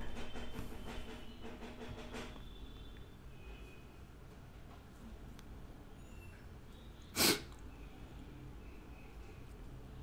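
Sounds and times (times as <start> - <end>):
sharp burst of breath: 7.1 - 7.6.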